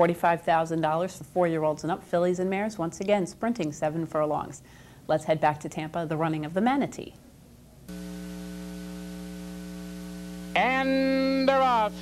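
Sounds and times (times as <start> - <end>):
electrical mains hum with hiss: 0.0 - 12.0.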